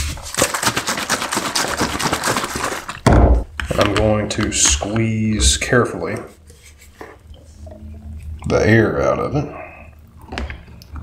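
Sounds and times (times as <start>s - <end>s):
liquid sloshing in shaken bottle: 0.0s - 3.0s.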